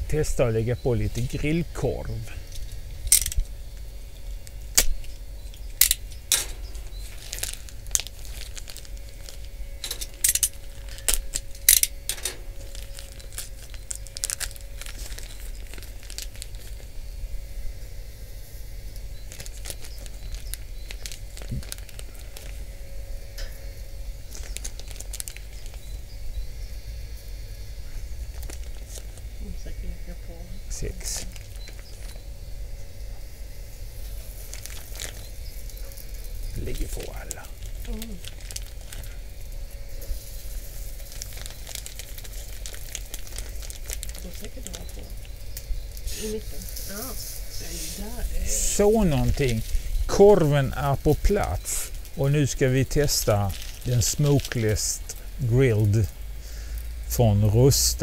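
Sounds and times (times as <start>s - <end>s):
faint grill fan hum: 0.0s - 58.0s
sausages placed on metal grill: 1.1s - 16.8s, 23.3s - 25.8s.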